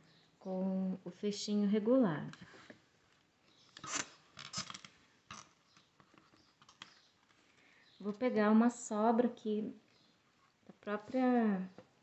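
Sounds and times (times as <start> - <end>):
faint rustles of handling cord: 2.3 - 8.2.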